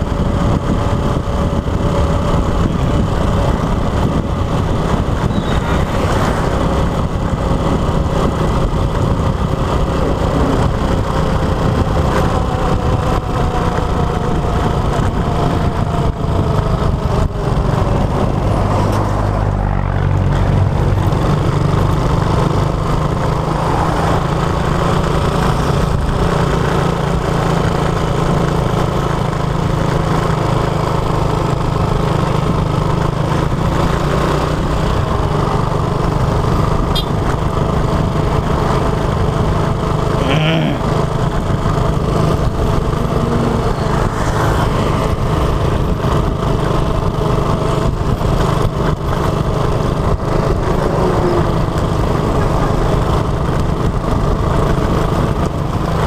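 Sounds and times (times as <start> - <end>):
motorcycle engine running: 0.0 - 56.0
road and wind noise: 0.0 - 56.0.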